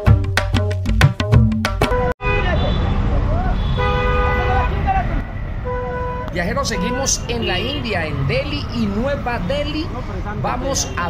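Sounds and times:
percussive music: 0.0s - 2.2s
vehicle horns honking: 1.8s - 8.5s
engines rumbling: 1.9s - 11.0s
voices of passers-by: 2.4s - 11.0s.

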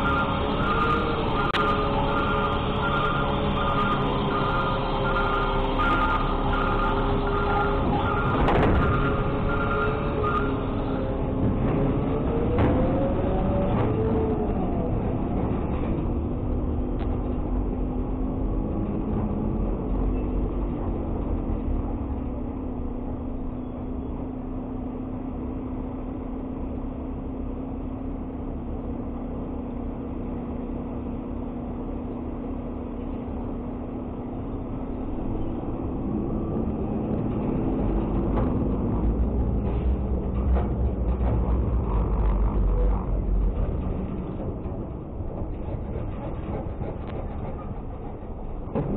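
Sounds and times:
truck diesel engine revving: 34.1s - 48.9s.

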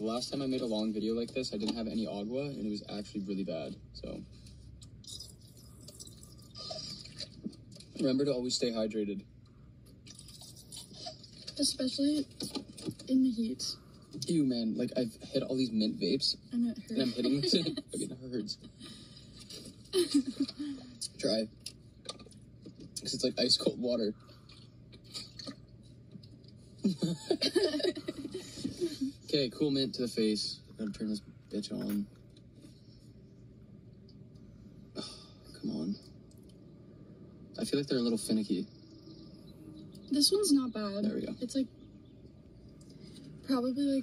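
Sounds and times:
sipping and swallowing: 4.8s - 8.0s, 9.9s - 11.6s, 24.1s - 25.8s
person gulping water: 5.0s - 8.0s, 10.0s - 11.5s, 24.2s - 25.8s
sucking through a straw: 5.1s - 7.4s.

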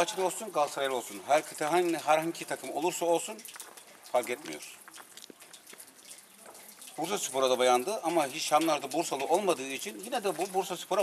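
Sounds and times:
fountain water running: 0.0s - 11.0s.

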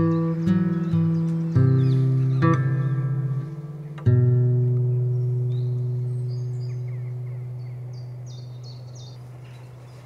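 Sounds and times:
guitar chord ringing: 0.0s - 9.4s
birds chirping: 0.0s - 10.0s.

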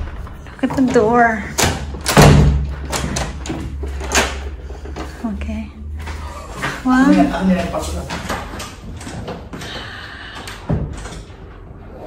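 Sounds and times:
wooden door thudding shut: 1.6s - 3.4s.

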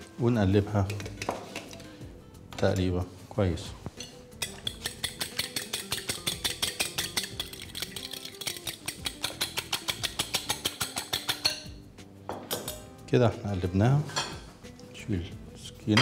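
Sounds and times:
fork beating eggs in glass bowl: 4.0s - 11.6s.

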